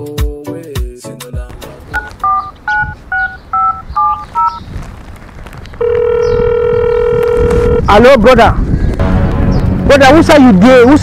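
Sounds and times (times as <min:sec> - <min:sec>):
phone keypad beeps: 0:02.0 - 0:04.6
phone ringing tone: 0:02.0 - 0:04.6, 0:05.8 - 0:07.9.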